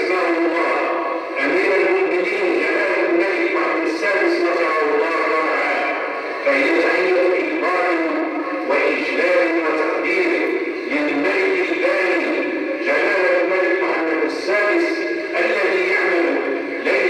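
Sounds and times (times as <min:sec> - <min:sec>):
man singing a recitation: 0:00.0 - 0:17.0.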